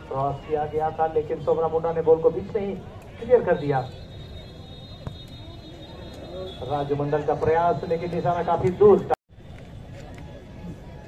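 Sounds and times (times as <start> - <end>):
crowd noise: 0.0 - 11.0
football being kicked: 5.0 - 5.2.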